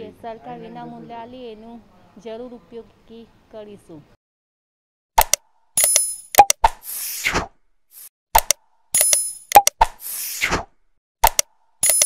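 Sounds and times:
sharp clicks: 5.2s - 6.8s, 8.4s - 10.0s, 11.2s - 12.0s.

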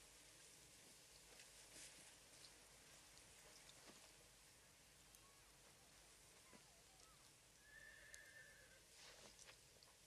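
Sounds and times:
distant horse whinny: 7.6s - 8.8s.

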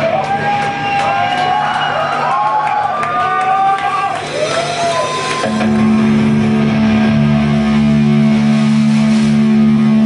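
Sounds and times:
distorted electric guitar and bass: 3.6s - 10.0s.

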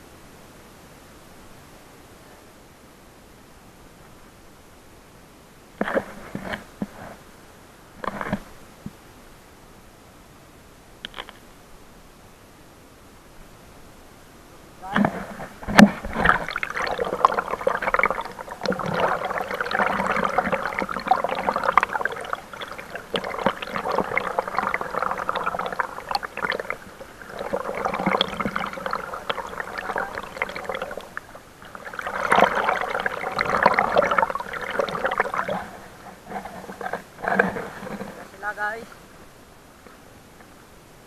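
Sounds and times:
river water rushing and splashing: 14.8s - 39.3s.

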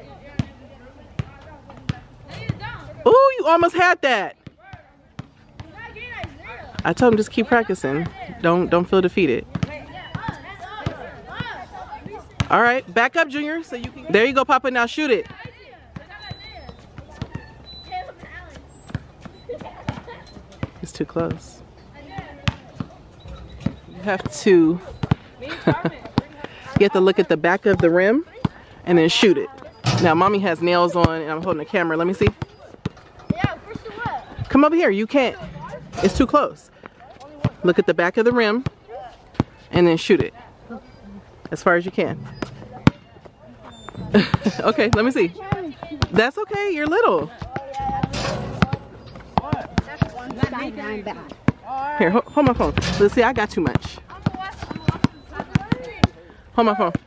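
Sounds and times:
faint voices: 0.0s - 57.0s
basketball bouncing: 0.3s - 0.6s, 1.2s - 2.8s, 3.5s - 21.4s, 22.0s - 28.6s, 29.4s - 40.4s, 41.4s - 57.0s
children's voices: 9.8s - 12.4s, 33.3s - 34.4s.

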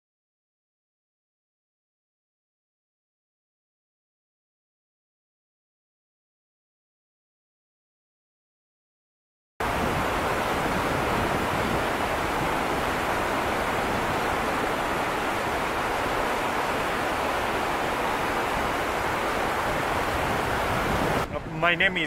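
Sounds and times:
river rushing over boulders: 9.6s - 21.4s.

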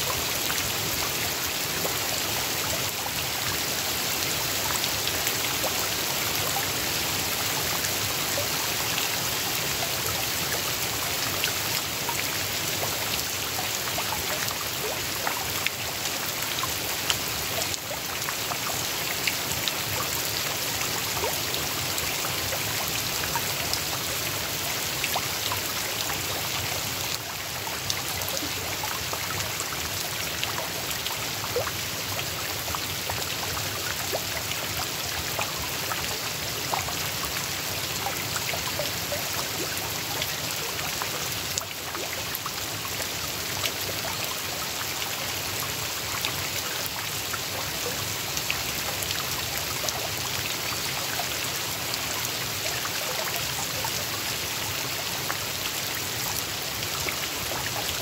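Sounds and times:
rain falling on pond water: 0.0s - 58.0s.

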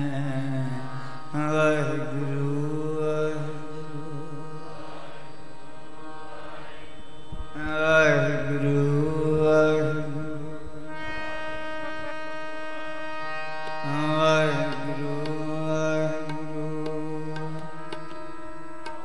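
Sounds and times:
man singing melodic phrases: 0.0s - 4.6s, 7.6s - 11.0s, 13.8s - 18.4s
harmonium accompaniment: 0.0s - 19.0s.

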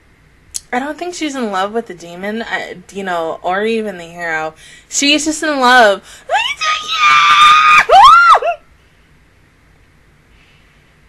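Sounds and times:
woman squealing: 6.3s - 8.6s.

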